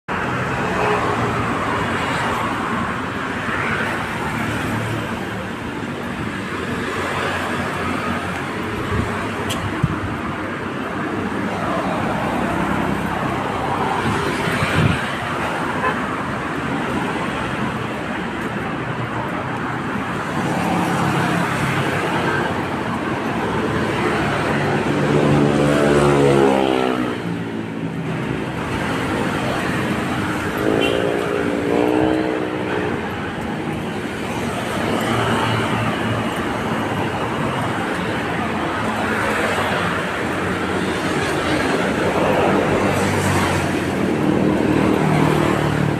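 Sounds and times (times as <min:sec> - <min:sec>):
traffic noise: 0:00.0 - 0:45.9.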